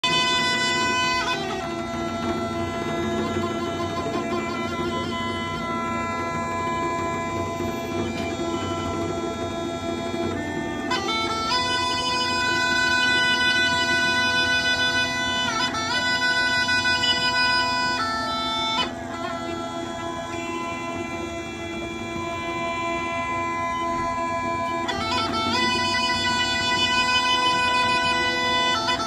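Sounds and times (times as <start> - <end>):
bagpipe melody over drone: 0.0 - 29.0.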